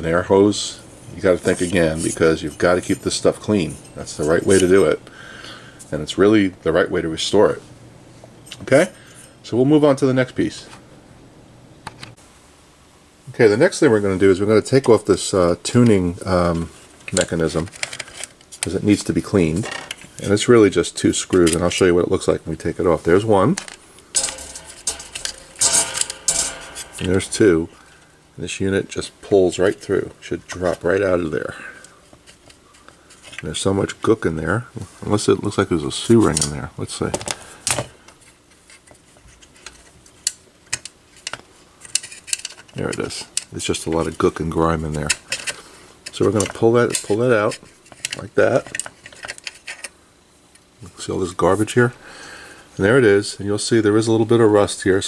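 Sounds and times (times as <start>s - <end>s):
light metallic clicks and rattles: 23.6s - 27.5s.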